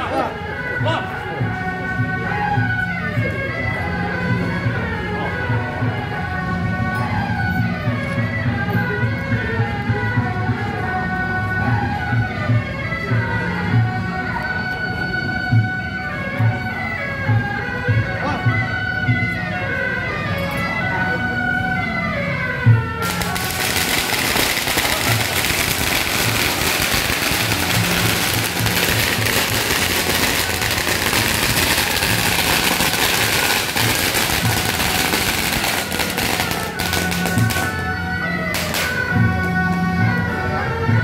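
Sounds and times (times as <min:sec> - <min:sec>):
music playing: 0:00.0 - 0:41.0
firecrackers crackling: 0:23.0 - 0:39.2.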